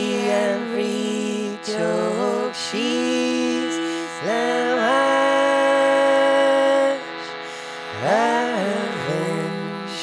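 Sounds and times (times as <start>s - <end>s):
slow singing in held notes: 0.0s - 10.0s
steady reed drone: 0.0s - 10.0s.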